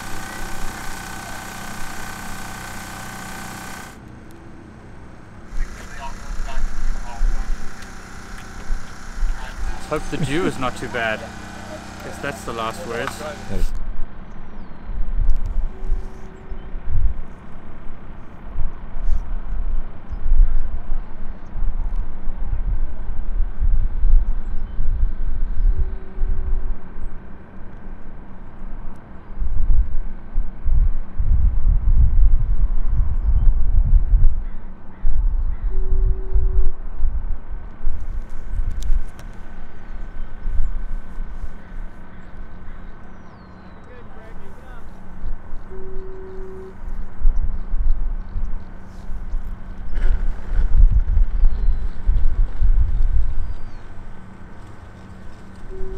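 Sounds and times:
faint hum: 0.0s - 17.4s, 30.7s - 55.9s
wind buffeting microphone: 29.5s - 39.2s, 46.8s - 54.0s.

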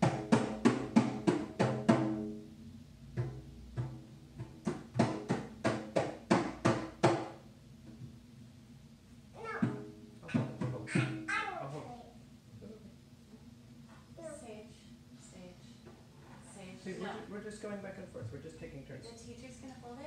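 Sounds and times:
frame drum struck by hand: 0.0s - 2.4s, 3.1s - 7.4s.

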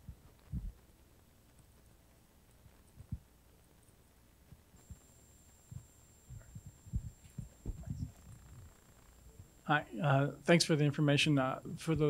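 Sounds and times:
soft low thumps: 0.0s - 0.9s, 2.6s - 3.3s, 5.7s - 9.6s
thin high whine: 4.5s - 12.0s.

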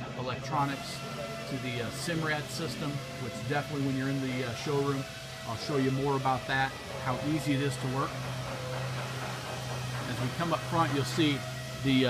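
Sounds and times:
factory hall background noise: 0.0s - 12.0s
steady low hum: 0.0s - 12.0s.

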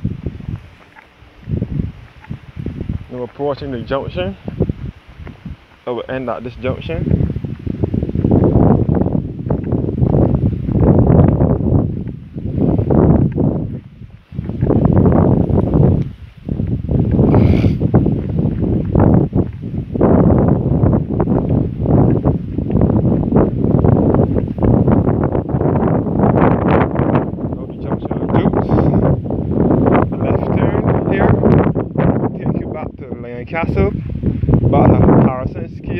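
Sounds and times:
wind buffeting microphone: 0.0s - 35.9s.

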